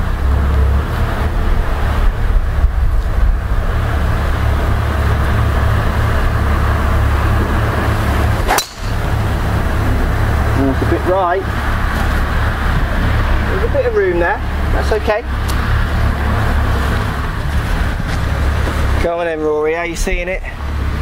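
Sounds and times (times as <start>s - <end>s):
wind buffeting microphone: 1.1s - 19.0s
golf club striking ball: 8.2s - 9.6s.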